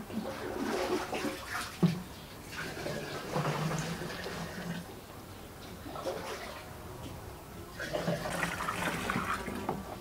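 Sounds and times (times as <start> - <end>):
water sloshing and splashing: 0.0 - 4.9, 5.7 - 6.8, 7.7 - 10.0.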